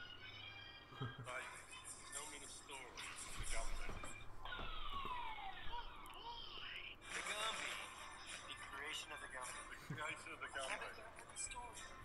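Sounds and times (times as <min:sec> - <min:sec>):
voices from video: 0:00.0 - 0:12.0.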